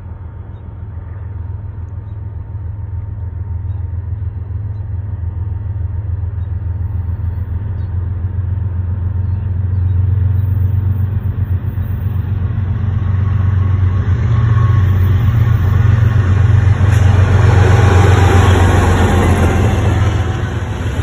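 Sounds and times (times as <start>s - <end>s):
diesel locomotive rumble: 0.0s - 21.0s
train wheel and rail noise: 0.0s - 21.0s.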